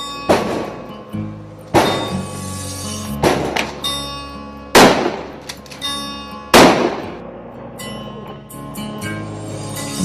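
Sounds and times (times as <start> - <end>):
background music with sustained tones: 0.0 - 10.0
loud gunshots with ringing tail: 4.8 - 5.4, 6.5 - 7.2.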